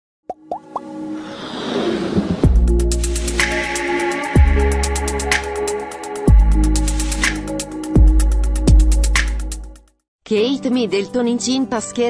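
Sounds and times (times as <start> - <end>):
whoosh: 1.2 - 3.5.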